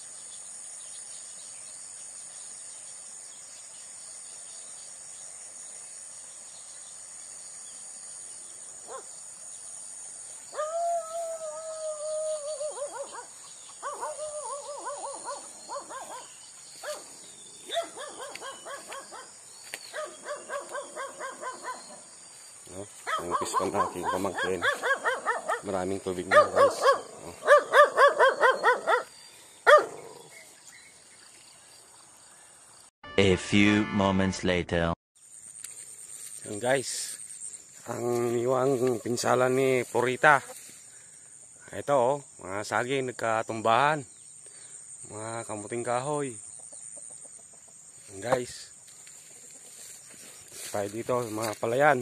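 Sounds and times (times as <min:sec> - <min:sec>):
insects chirring: 0:00.0 - 0:32.9, 0:35.2 - 0:52.0
animal calling: 0:10.5 - 0:17.0, 0:17.6 - 0:19.3, 0:19.9 - 0:22.1, 0:23.0 - 0:30.4.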